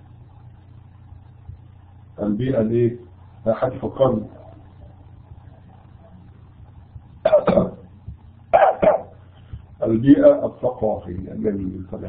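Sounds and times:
man coughing: 7.2s - 7.9s, 8.6s - 9.1s.

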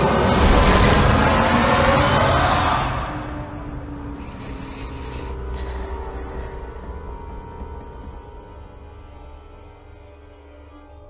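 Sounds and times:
dense trailer sound design noise: 0.0s - 8.2s.

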